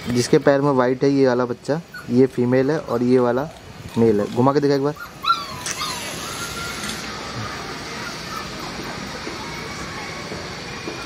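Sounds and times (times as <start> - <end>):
puppy whimpering: 1.8 - 3.0, 4.8 - 7.0, 7.9 - 9.0.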